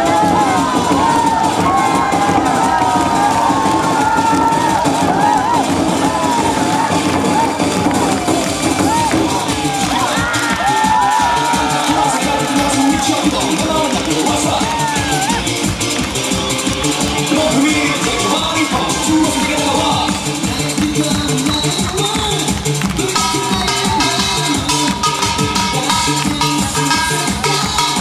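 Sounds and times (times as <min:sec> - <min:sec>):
barrel drums fast rhythm: 0:00.0 - 0:28.0
crowd cheering and shouting: 0:00.0 - 0:28.0.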